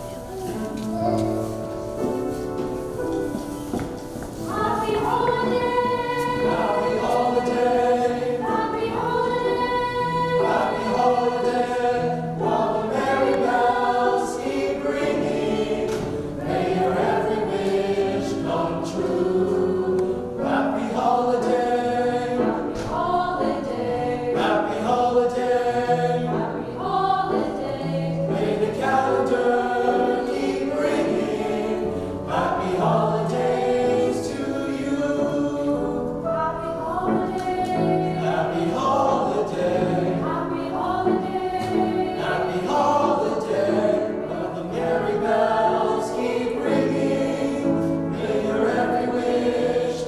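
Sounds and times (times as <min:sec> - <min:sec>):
choir singing in harmony: 0:00.0 - 0:50.0.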